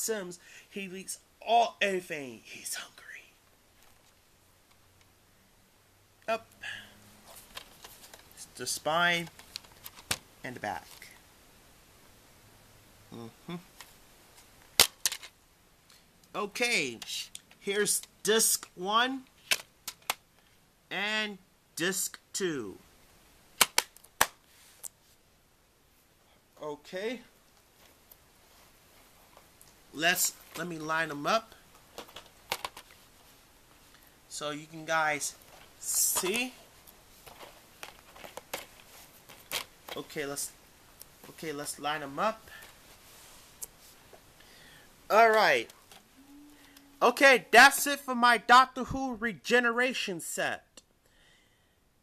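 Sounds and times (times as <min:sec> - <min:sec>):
plastic cases clicking: 0:09.2 - 0:10.2, 0:31.9 - 0:33.0, 0:37.2 - 0:40.0.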